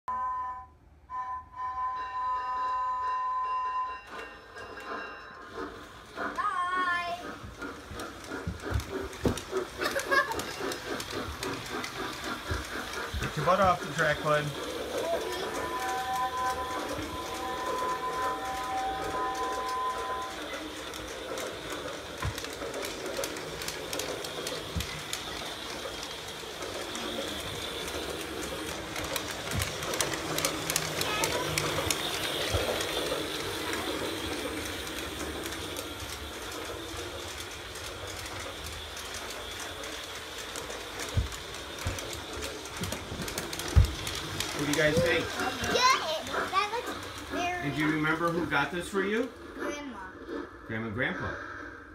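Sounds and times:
toy train motor whir: 1.6 - 51.9
toy train wheel clatter: 2.4 - 50.1.

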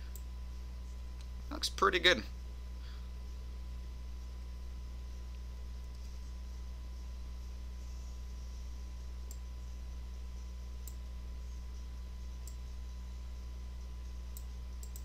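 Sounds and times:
low electrical hum: 0.0 - 15.0
computer mouse clicks: 9.2 - 9.5, 10.8 - 11.0, 14.3 - 15.0.

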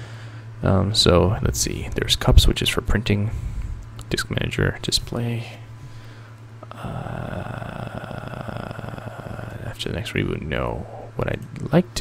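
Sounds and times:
man's creaky drawn-out uhh: 6.6 - 9.8.

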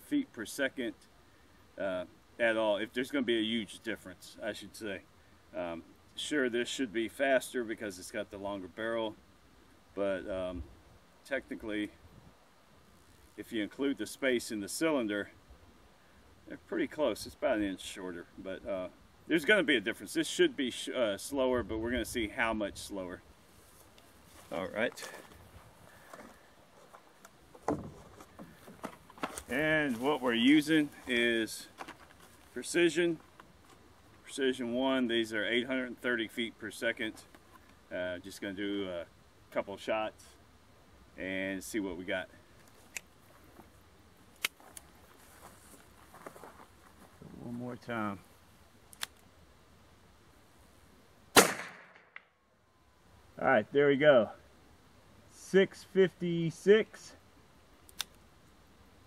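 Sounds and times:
revolver shot: 51.3 - 52.2.

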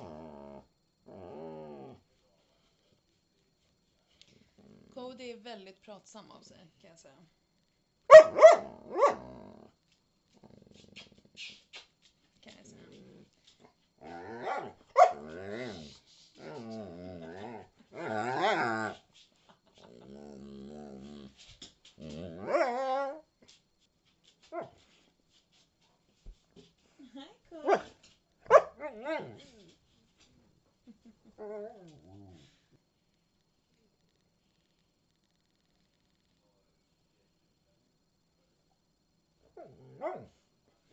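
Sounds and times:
dog growly talking sounds: 0.0 - 2.0, 4.4 - 4.9, 12.6 - 13.4, 14.0 - 19.0, 19.8 - 21.4, 28.8 - 29.7
dog barking: 8.1 - 9.3, 14.4 - 15.3, 28.5 - 29.0.

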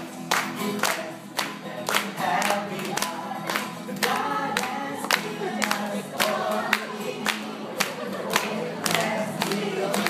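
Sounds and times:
children singing together: 2.0 - 10.0.

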